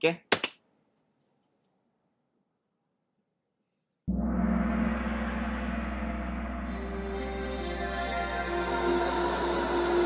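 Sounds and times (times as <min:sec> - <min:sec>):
logo song playback: 0:04.1 - 0:10.0
sustained chord over deep bass: 0:04.1 - 0:10.0.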